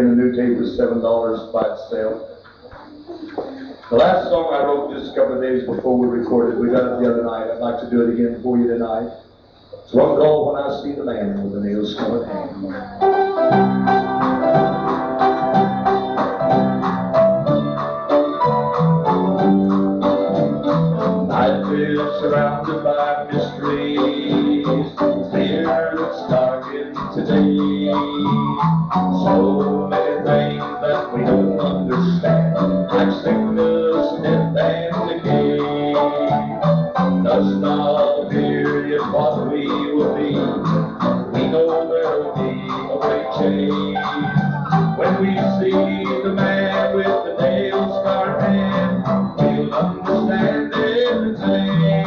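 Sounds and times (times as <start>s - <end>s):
guitar: 2.2s - 8.1s, 11.2s - 52.0s
gospel band music: 11.7s - 52.0s
bass guitar: 12.2s - 52.0s.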